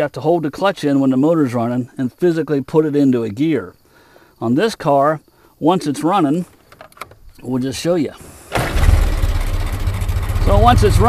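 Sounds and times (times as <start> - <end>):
car engine starting and running: 8.2 - 11.0.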